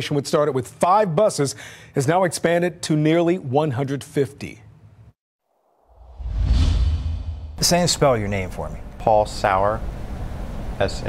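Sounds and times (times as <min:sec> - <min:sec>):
whoosh sound effect: 0:05.9 - 0:07.7
deep rumble: 0:06.0 - 0:07.7.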